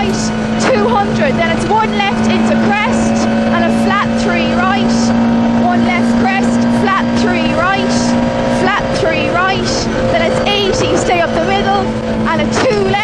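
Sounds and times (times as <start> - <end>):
rally car engine running hard: 0.0 - 13.0.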